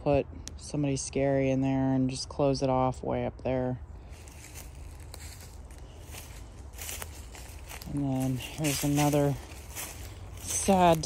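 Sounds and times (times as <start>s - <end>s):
footsteps on dry leaves: 3.8s - 11.0s.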